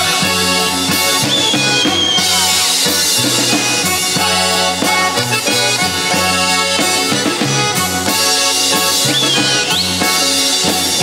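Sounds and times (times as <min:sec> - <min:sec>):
button accordion: 0:00.0 - 0:11.0
drum kit beat: 0:00.0 - 0:11.0.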